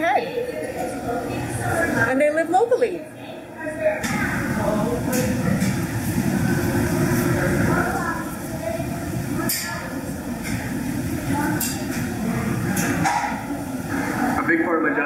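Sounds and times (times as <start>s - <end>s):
indistinct voices: 0.0s - 15.0s.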